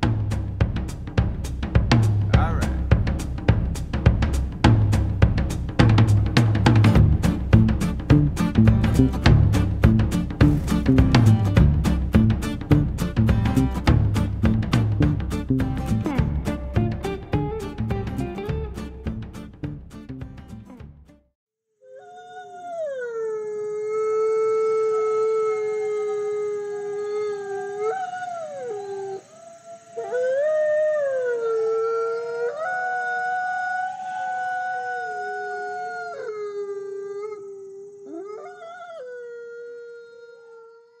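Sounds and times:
wolves howling: 21.9s - 41.0s.

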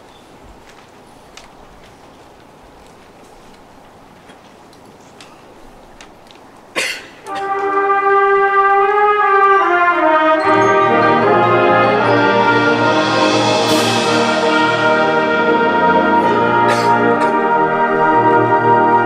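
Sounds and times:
brass playing held chords: 7.2s - 19.0s
low brass: 7.2s - 19.0s.

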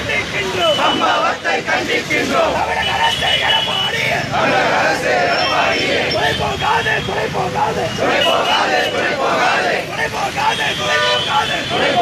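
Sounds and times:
crowd chanting slogan: 0.0s - 12.0s.

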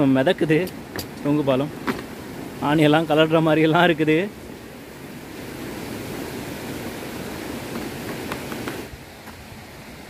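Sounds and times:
stream rushing over rocks: 0.0s - 10.0s.

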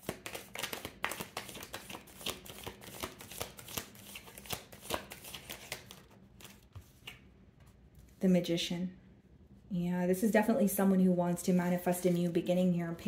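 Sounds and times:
cards being shuffled: 0.0s - 8.2s.

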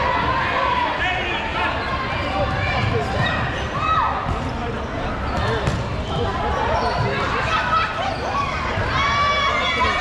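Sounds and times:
players shouting and chatting: 0.0s - 10.0s
balls bouncing on gym floor: 5.3s - 6.3s.

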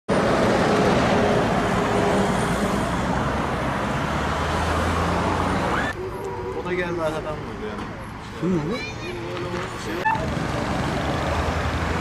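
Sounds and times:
road traffic passing: 0.1s - 12.0s.

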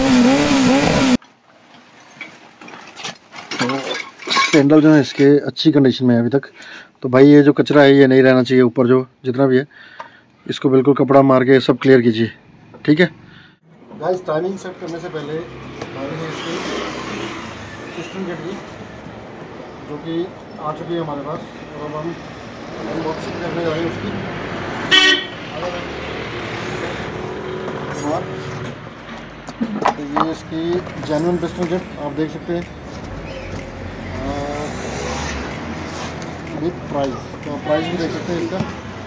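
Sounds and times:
motor vehicle passing: 14.6s - 20.1s, 21.3s - 39.0s.

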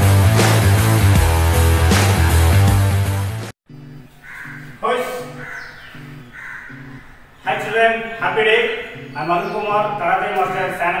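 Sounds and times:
crows cawing: 3.7s - 9.6s
faint background music: 3.7s - 11.0s.

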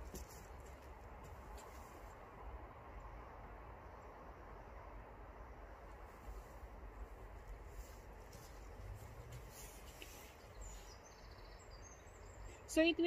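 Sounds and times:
small bird chirping: 9.6s - 12.8s.

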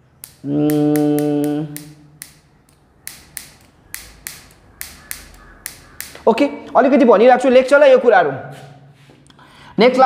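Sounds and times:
marker cap clicking: 0.1s - 6.3s.

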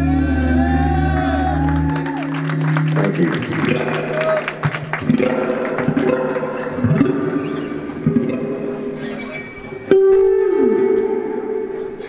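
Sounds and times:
electric guitar notes picked: 0.0s - 12.0s.

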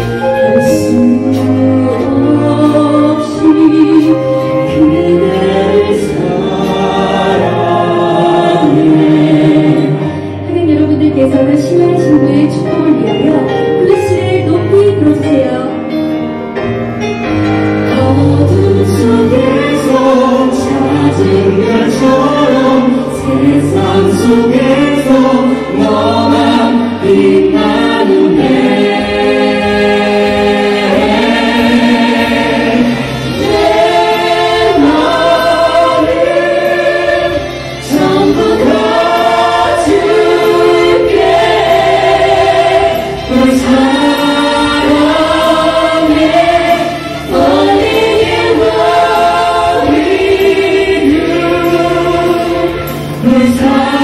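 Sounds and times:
musical accompaniment: 0.0s - 54.0s
voices singing in harmony: 0.0s - 54.0s.

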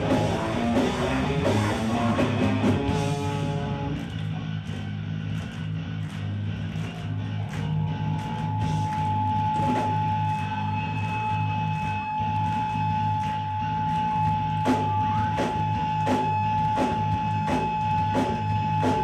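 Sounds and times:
punk band playing live: 0.0s - 19.0s.

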